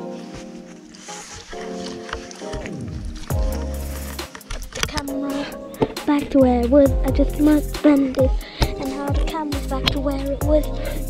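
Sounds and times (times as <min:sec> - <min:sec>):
lo-fi hip-hop music: 0:00.0 - 0:11.0.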